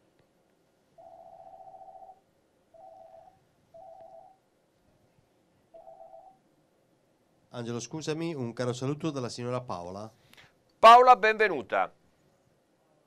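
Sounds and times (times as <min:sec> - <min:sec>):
telephone ringing buzzing tone: 0:01.0 - 0:04.4, 0:05.7 - 0:06.4.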